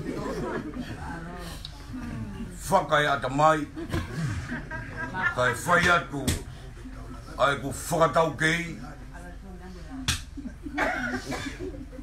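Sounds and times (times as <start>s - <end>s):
voices: 0.0s - 12.0s
sharp slap or knock: 10.1s - 10.3s.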